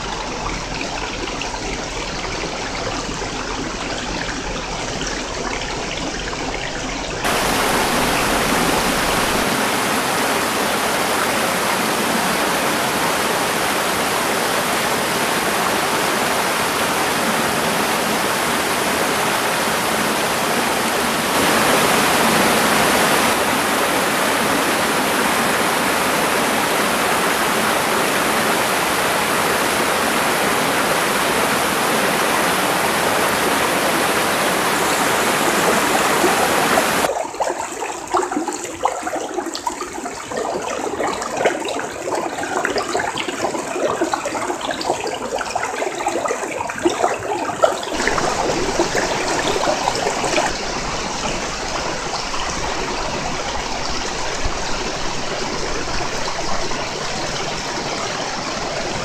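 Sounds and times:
stream water rushing over rocks: 0:04.3 - 0:59.0.

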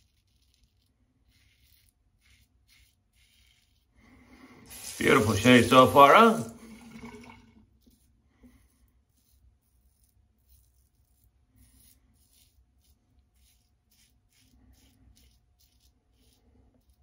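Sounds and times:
razor scratching stubble: 0:00.0 - 0:04.0, 0:04.6 - 0:06.5, 0:08.7 - 0:17.0.

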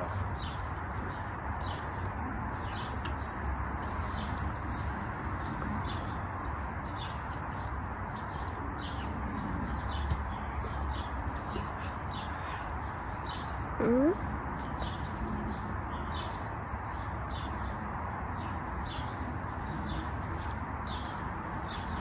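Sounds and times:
outdoor background hiss: 0:00.0 - 0:22.0
small birds chirping: 0:00.0 - 0:22.0.

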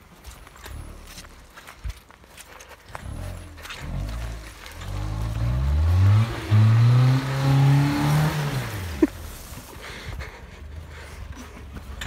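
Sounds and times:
engine revving hard: 0:03.1 - 0:09.1.

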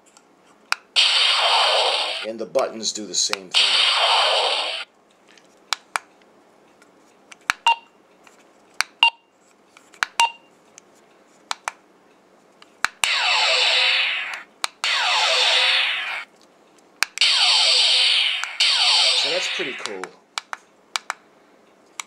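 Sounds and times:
electronic phaser firing effects: 0:01.0 - 0:02.3, 0:03.6 - 0:04.9, 0:13.0 - 0:16.3, 0:17.2 - 0:20.0.

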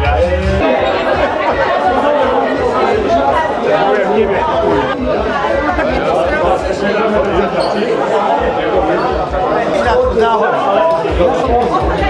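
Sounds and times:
many people chattering: 0:00.0 - 0:12.0.

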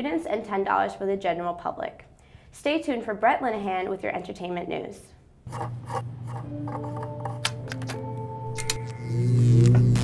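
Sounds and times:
scraping rasping strokes: 0:05.5 - 0:07.4.

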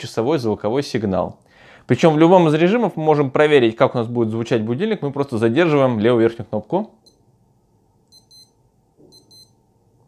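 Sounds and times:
digital watch alarm beeps: 0:08.1 - 0:09.6.

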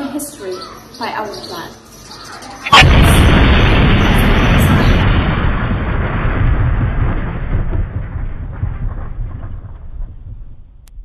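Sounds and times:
bomb explosion with heavy rumble: 0:02.7 - 0:11.0.

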